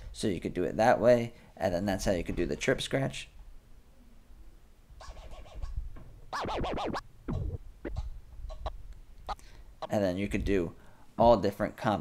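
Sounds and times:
record scratching: 5.0 - 8.8.

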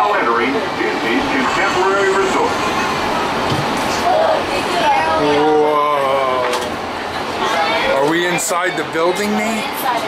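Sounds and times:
indistinct voices talking: 0.0 - 10.0
monorail car running noise: 0.0 - 10.0.

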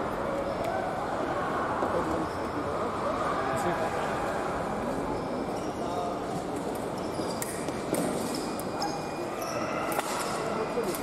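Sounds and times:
murmur of voices: 0.0 - 11.0
fencing blades and footwork clicks: 6.6 - 8.8.

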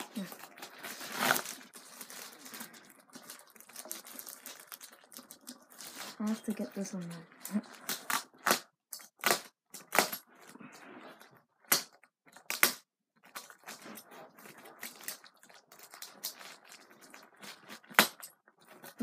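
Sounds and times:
cardboard crunching and tearing: 0.0 - 6.4.

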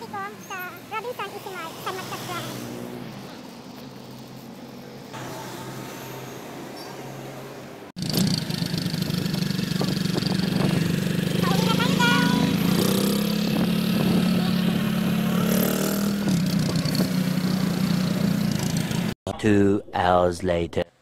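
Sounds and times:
motorcycle engine running: 8.0 - 19.2.

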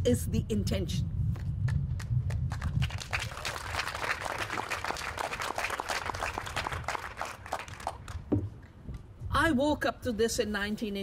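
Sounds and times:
crowd applauding: 2.5 - 8.3.

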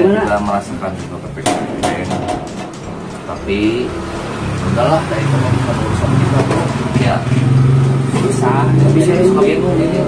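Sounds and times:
men talking: 0.0 - 10.0.

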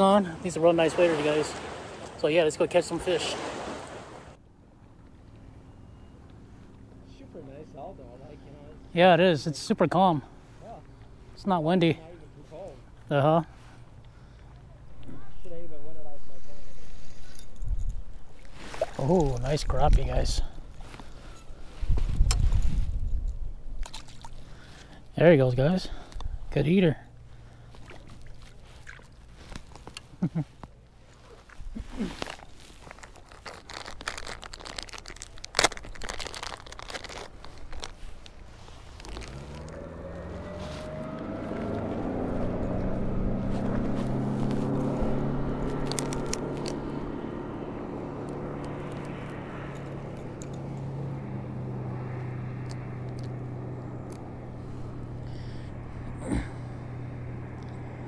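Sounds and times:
motorboat engine: 36.0 - 58.0.

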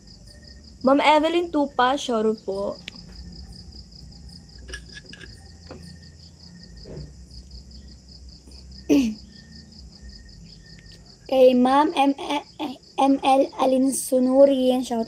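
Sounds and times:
crickets chirping: 0.0 - 15.0
person coughing: 8.9 - 9.2.

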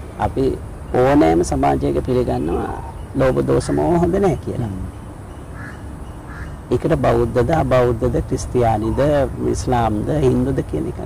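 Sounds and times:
man speaking: 0.2 - 4.9, 6.7 - 11.0.

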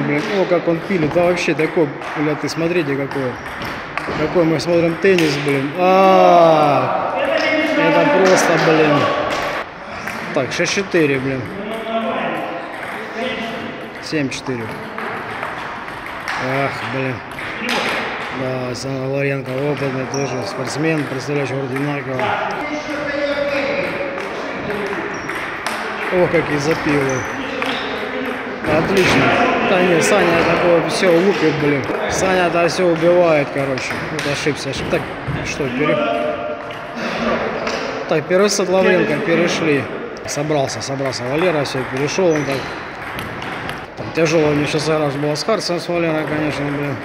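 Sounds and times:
room noise: 0.0 - 47.0
low male speech: 10.3 - 14.9, 16.4 - 17.8.

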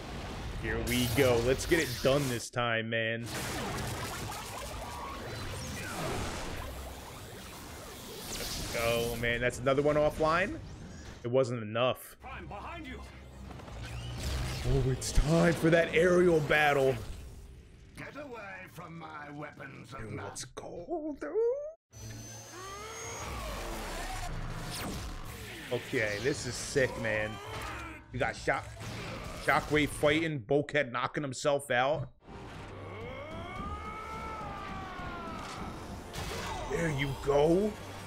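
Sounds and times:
cartoon battle music: 0.6 - 2.4, 3.2 - 10.5, 32.2 - 38.0.

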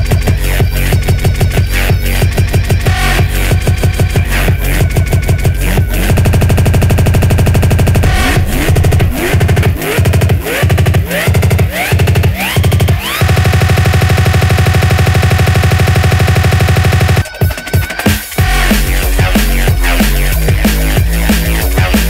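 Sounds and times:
drum and bass music: 0.0 - 22.0
fast machine-gun-like drum roll: 3.5 - 22.0
rising swoops: 4.3 - 13.2.

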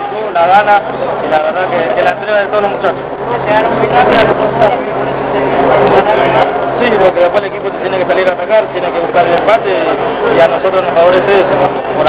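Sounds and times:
low hum: 0.0 - 12.0
men talking: 0.0 - 12.0.

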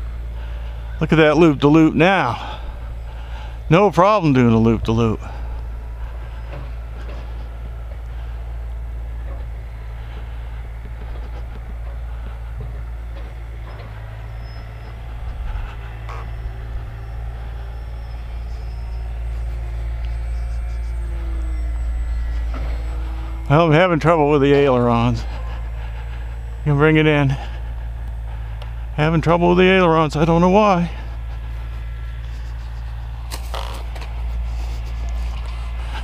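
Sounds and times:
steady low rumble: 0.0 - 36.0
model plane motor whining: 5.2 - 28.9, 31.0 - 36.0.

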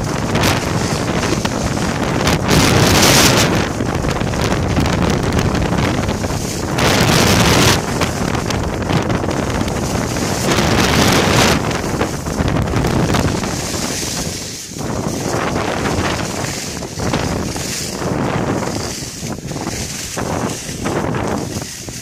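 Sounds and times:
wind buffeting microphone: 0.0 - 22.0
skis hissing over snow: 9.8 - 22.0.

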